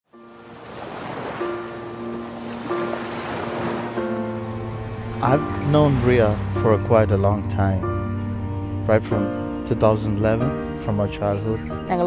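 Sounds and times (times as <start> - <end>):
ocean waves washing: 0.2 - 10.0
soft sustained music notes: 0.2 - 12.0.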